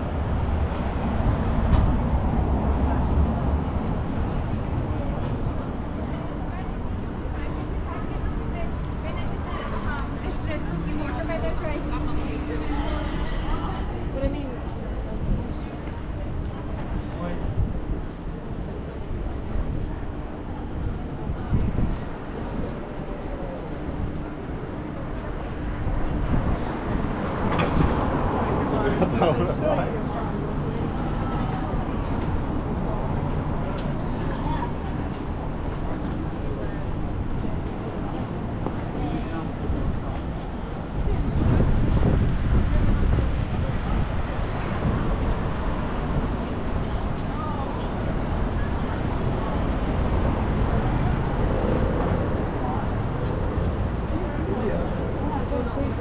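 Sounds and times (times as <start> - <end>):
road traffic passing: 0.0 - 56.0
voices of passers-by: 0.0 - 56.0
loud vehicle passing: 41.2 - 56.0.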